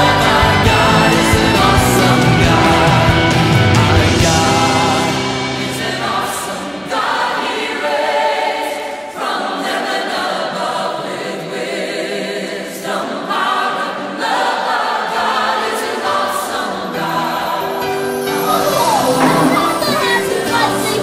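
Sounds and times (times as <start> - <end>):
choir singing with music: 0.0 - 21.0.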